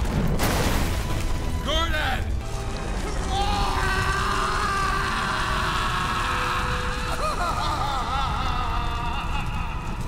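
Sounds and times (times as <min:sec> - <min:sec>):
large fire rumbling: 0:00.0 - 0:10.0.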